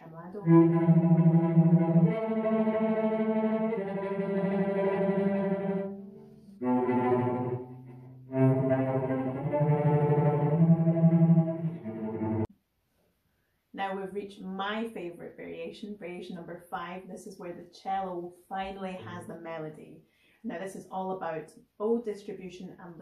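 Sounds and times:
cello bowed tremolo: 0.0s - 12.5s.

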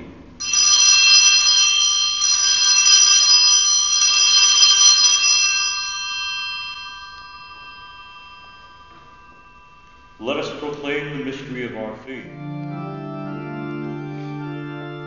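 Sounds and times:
altar bell ringing: 0.4s - 11.8s.

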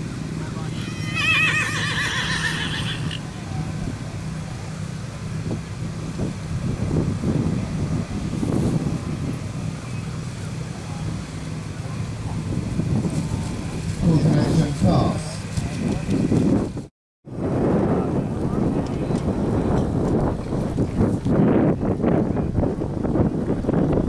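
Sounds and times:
horse whinnying: 0.7s - 3.2s.

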